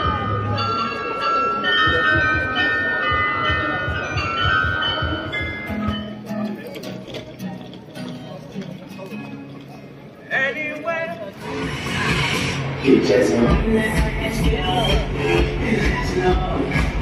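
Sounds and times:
bells chiming a tune: 0:00.0 - 0:09.9
man singing: 0:12.8 - 0:17.0.

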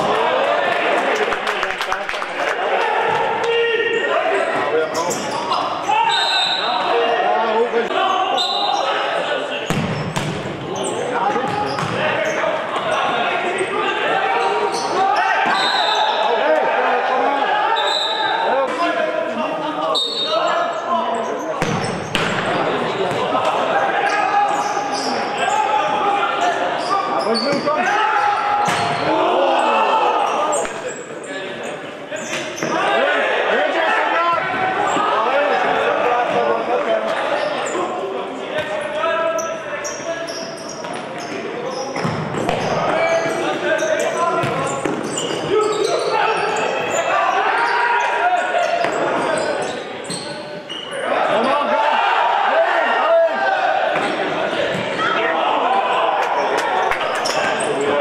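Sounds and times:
players calling out: 0:00.0 - 0:58.0
ball kicked and bouncing on court: 0:09.7 - 0:10.6, 0:11.3 - 0:12.1, 0:44.4 - 0:45.0, 0:54.0 - 0:55.0.

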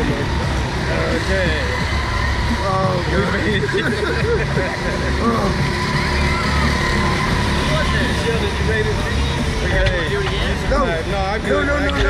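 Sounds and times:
people laughing and groaning: 0:00.0 - 0:09.0.

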